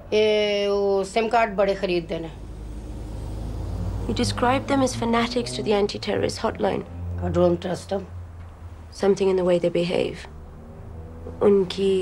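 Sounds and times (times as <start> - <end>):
vehicle rumble: 0.0 - 12.0.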